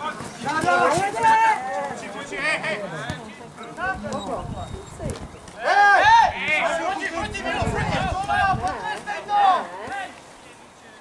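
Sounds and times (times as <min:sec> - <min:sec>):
people shouting calls: 0:00.0 - 0:04.9, 0:05.5 - 0:10.8.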